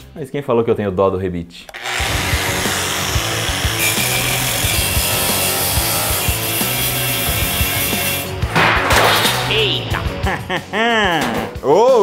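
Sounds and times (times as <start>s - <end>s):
angle grinder cutting steel: 1.7s - 8.5s.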